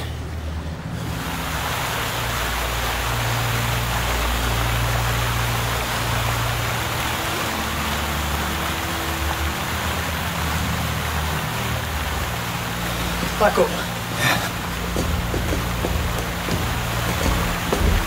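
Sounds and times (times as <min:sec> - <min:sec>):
water rushing and churning: 0:00.0 - 0:18.0.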